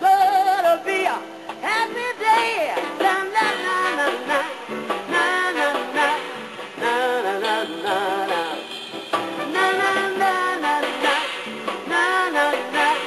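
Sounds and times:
live jazz band playing: 2.3 - 13.0.

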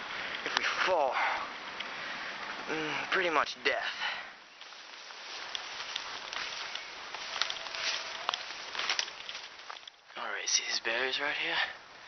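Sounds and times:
footsteps through undergrowth: 4.5 - 10.2
sharp crackles: 4.5 - 10.2.

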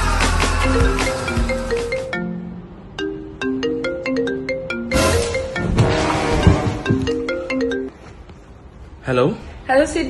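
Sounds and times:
marimba-like phone ringtone: 0.6 - 7.9.

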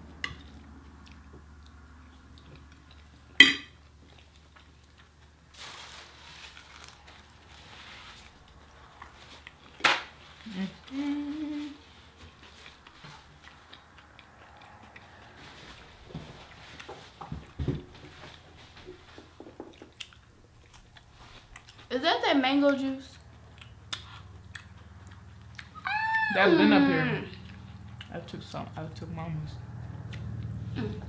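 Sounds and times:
chewing crispy food: 0.2 - 17.6, 19.6 - 21.9, 23.1 - 26.0, 27.3 - 28.6, 29.7 - 31.0
person humming mm: 10.5 - 11.8.

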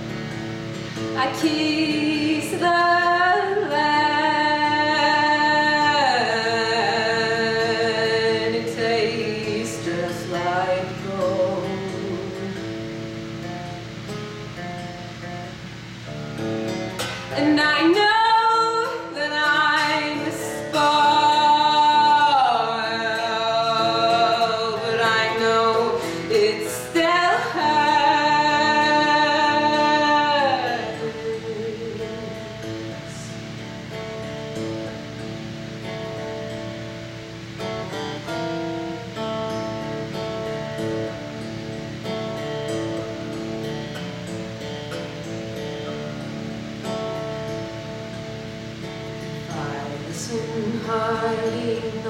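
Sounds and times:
acoustic guitar: 0.0 - 52.0
woman singing: 1.0 - 13.1, 17.3 - 33.8, 49.0 - 52.0.

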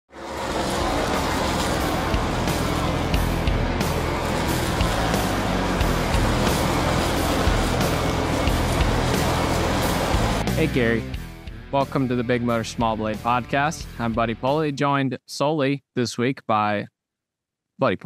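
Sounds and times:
race car engines passing: 0.1 - 11.0
intro music with a beat: 0.6 - 11.7.

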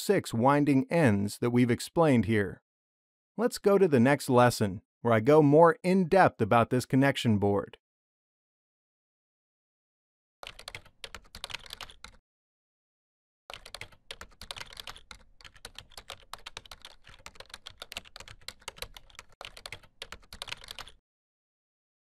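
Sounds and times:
keyboard typing: 10.4 - 12.2, 13.5 - 21.0.

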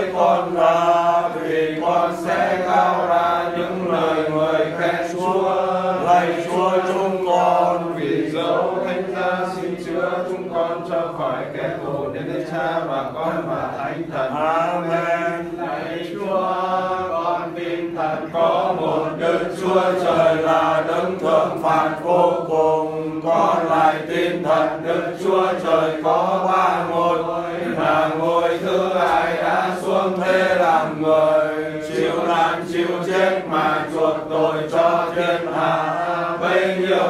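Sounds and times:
prayer chanted in sing-song: 0.0 - 37.0.

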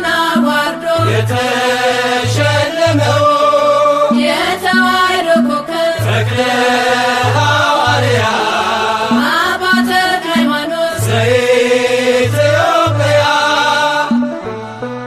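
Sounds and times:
solo voice singing a hymn: 0.0 - 14.2
instrumental accompaniment: 0.0 - 15.0.

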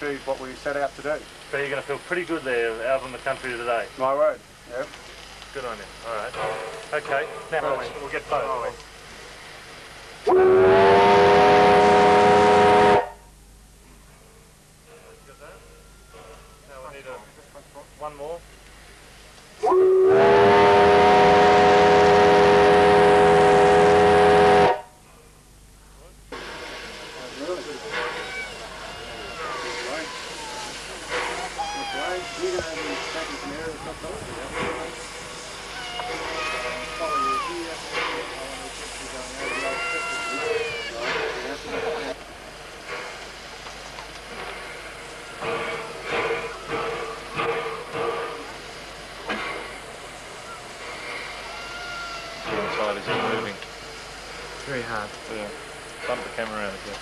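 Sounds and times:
steam locomotive whistle: 10.2 - 13.3, 19.6 - 25.0
people's voices: 26.7 - 42.2.

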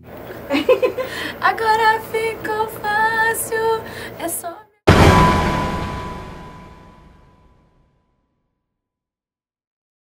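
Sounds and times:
woman singing: 1.3 - 4.8.

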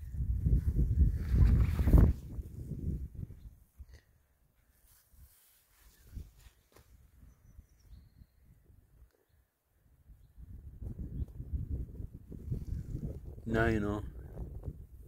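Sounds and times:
wind buffeting microphone: 0.0 - 3.9, 10.0 - 15.0
faint rustles: 3.9 - 7.0.

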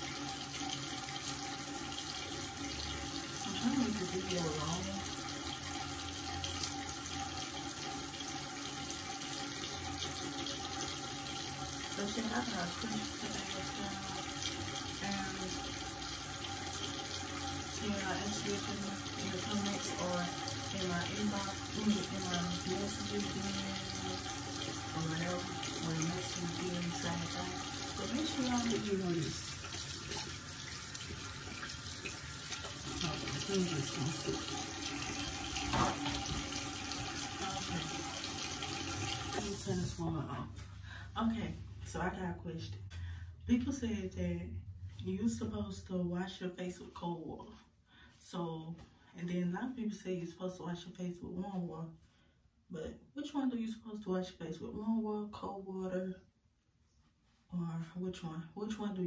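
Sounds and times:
sink tap running: 0.0 - 40.2.

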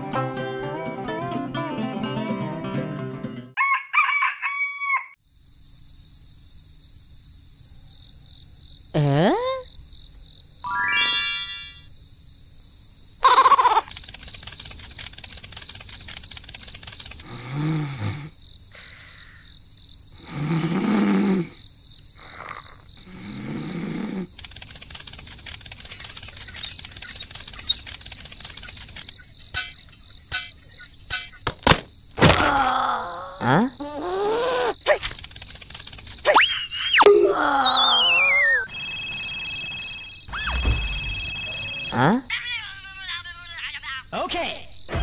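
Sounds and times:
cartoon snoring: 17.2 - 18.9, 20.2 - 21.6, 22.2 - 24.4, 32.5 - 34.8
faint high chirping: 25.5 - 31.5, 35.8 - 38.8
cartoon voice sliding in pitch: 36.3 - 38.7.

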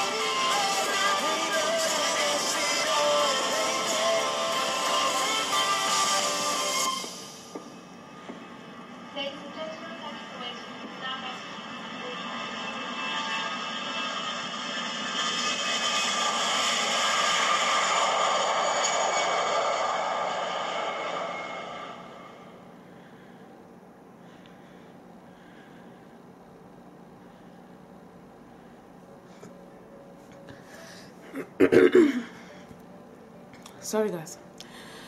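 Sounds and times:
rushing noisy swell: 13.3 - 22.6.

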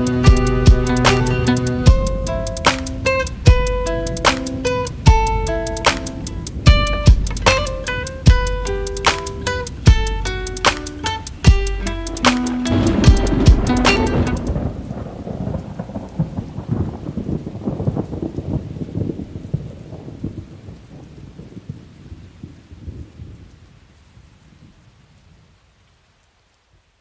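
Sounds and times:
song with guitar and beat: 0.0 - 14.6
thunder rumbling: 0.0 - 23.7
rain: 0.0 - 27.0.

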